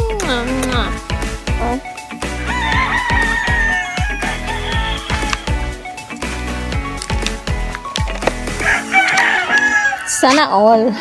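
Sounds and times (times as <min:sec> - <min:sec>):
background music with beat: 0:00.0 - 0:10.0
rooster crowing: 0:02.4 - 0:05.5, 0:08.6 - 0:10.2.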